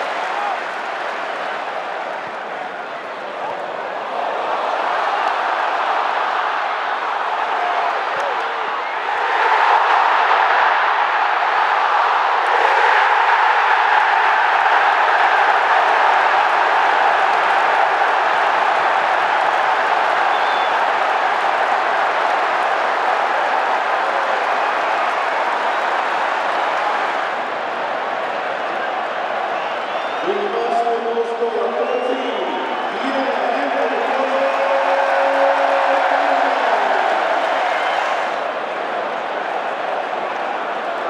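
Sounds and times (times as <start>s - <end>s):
stadium crowd cheering: 0.0s - 41.0s.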